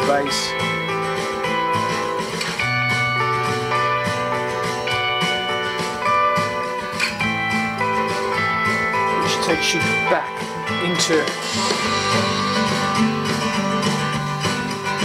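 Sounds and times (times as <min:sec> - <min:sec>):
guitar chords: 0:00.0 - 0:15.0
guitar melody: 0:00.0 - 0:15.0
bass line: 0:07.2 - 0:15.0.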